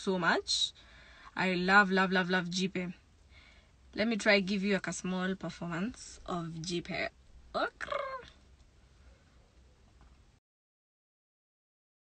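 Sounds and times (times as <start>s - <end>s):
woman's voice: 0.0s - 3.0s, 3.9s - 8.4s
faint low hum in car: 0.0s - 10.4s.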